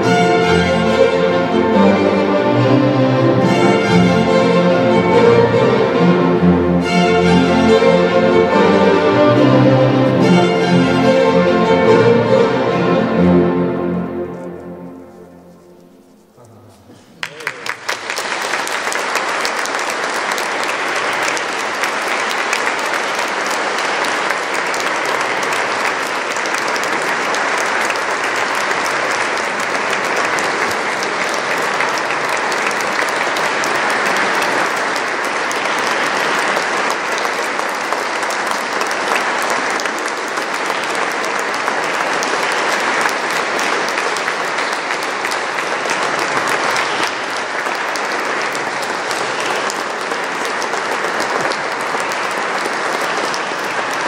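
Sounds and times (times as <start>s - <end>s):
audience applauding: 0.0s - 15.2s, 16.9s - 54.0s.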